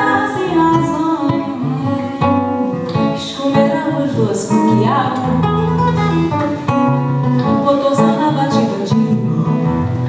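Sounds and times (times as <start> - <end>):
acoustic guitar plucked: 0.0 - 10.0.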